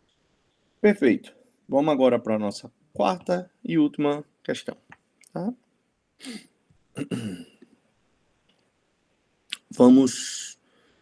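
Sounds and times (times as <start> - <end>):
man clearing his throat: 7.0 - 7.5.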